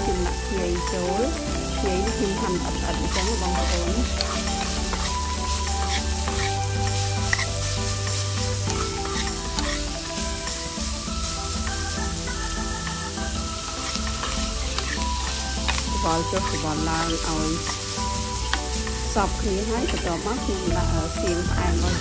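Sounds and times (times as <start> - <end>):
background music: 0.0 - 22.0
meat sizzling in a wok: 0.0 - 22.0
metal spatula scraping wok: 0.1 - 20.3.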